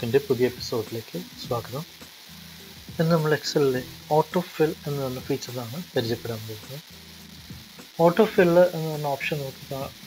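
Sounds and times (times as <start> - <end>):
man's voice: 0.0 - 1.9, 3.0 - 6.8, 8.0 - 10.0
steady microphone hiss: 0.0 - 10.0.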